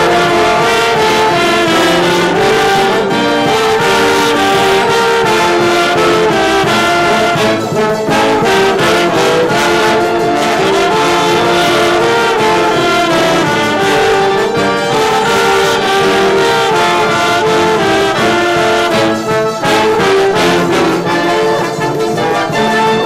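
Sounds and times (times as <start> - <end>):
brass and wind band: 0.0 - 23.0
strummed guitars: 0.0 - 23.0.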